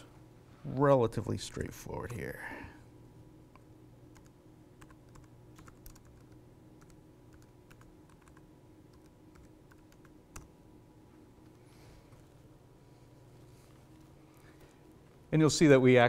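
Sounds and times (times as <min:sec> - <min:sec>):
low room hum: 0:00.0 - 0:16.0
computer keyboard keystrokes: 0:04.1 - 0:10.5.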